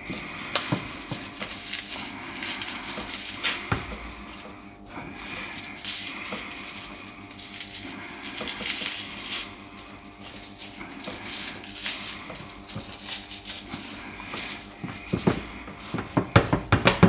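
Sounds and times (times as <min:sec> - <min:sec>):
hands rustling meat in a tray: 0:00.0 - 0:17.0.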